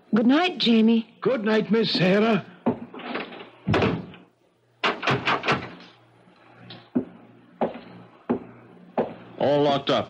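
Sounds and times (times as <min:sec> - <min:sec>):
wooden door shutting: 0:02.7 - 0:04.2, 0:04.8 - 0:05.8.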